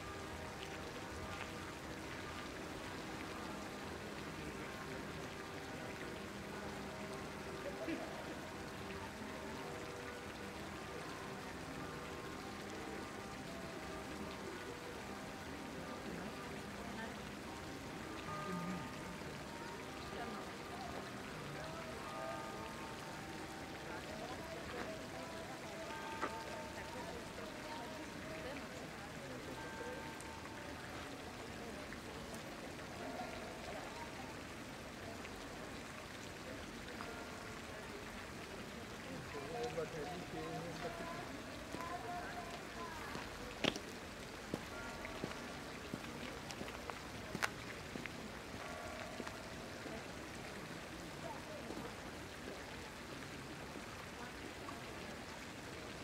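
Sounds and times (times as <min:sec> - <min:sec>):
faint voices: 0:00.0 - 0:56.0
fountain water splashing: 0:00.0 - 0:56.0.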